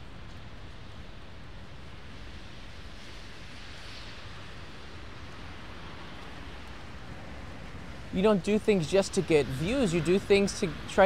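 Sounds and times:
traffic on wet street: 0.0 - 11.0.

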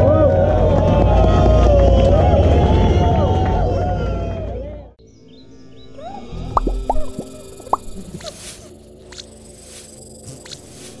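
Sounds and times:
electronic music with synth tones: 6.4 - 11.0.

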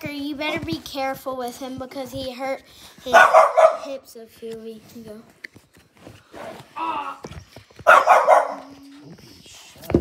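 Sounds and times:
dog barking: 3.1 - 3.9, 7.8 - 8.8.

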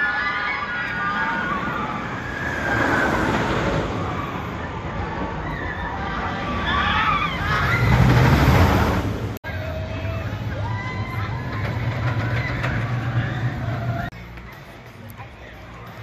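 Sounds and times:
roller coaster rumbling on track: 0.0 - 16.0.

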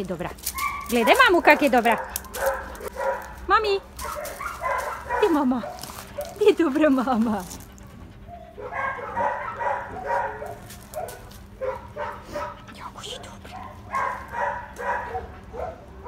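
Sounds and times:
dogs barking: 0.0 - 16.0.

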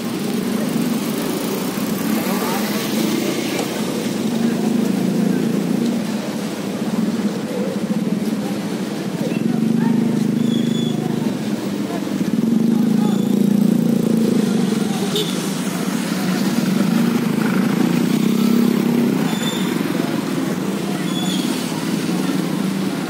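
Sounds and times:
motorcycle engines idling: 0.0 - 23.0
onlookers' voices: 0.0 - 23.0.

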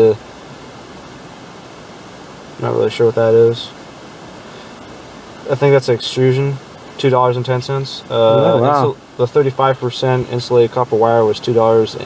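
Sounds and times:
steady background hiss: 0.0 - 12.0
spoken word: 7.1 - 9.4.

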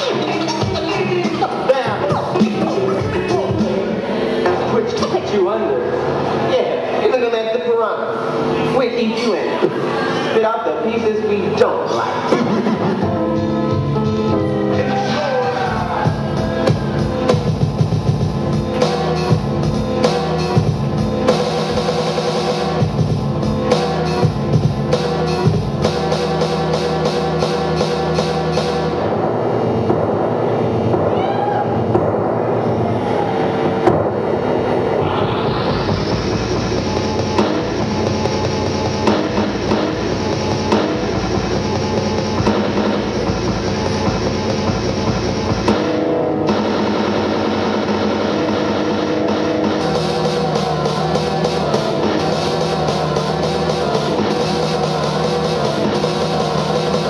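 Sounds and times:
drum-heavy beat on turntables: 0.0 - 5.2, 15.6 - 32.6, 33.7 - 57.0.

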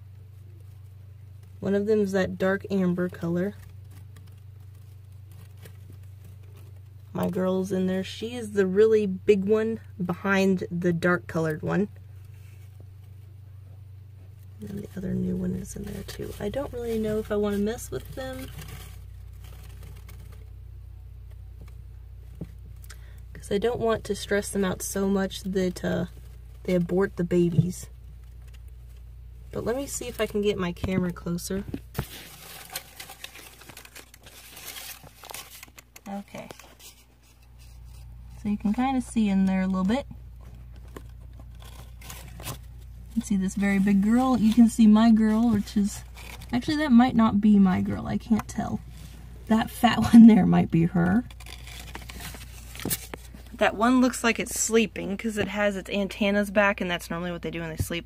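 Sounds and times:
faint plastic rustling: 0.0 - 58.0
steady low hum: 0.0 - 58.0.

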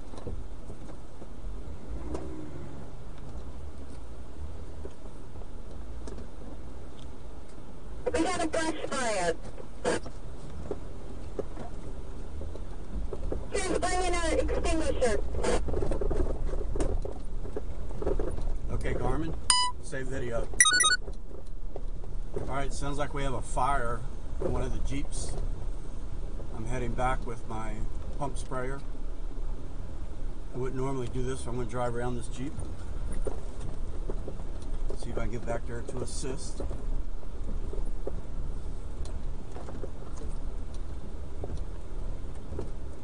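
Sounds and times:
vehicle low rumble: 0.0 - 8.1, 9.0 - 43.0.

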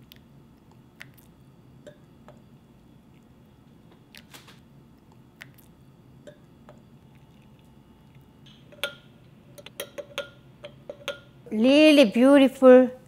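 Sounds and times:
spoon clinking against glass: 8.5 - 11.3.

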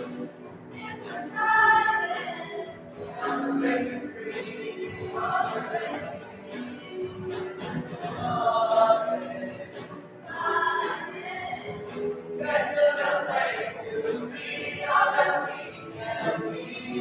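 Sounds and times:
choir singing: 0.8 - 17.0.

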